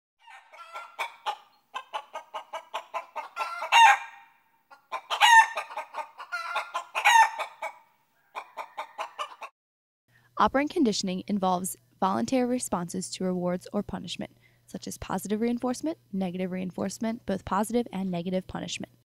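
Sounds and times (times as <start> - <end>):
hen clucking: 0.2 - 9.5
hen squawking: 0.2 - 9.5.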